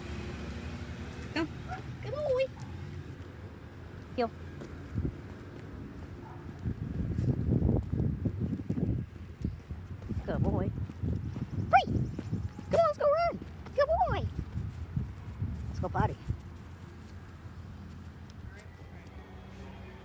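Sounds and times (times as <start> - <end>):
footsteps on pavement: 0.8 - 19.7.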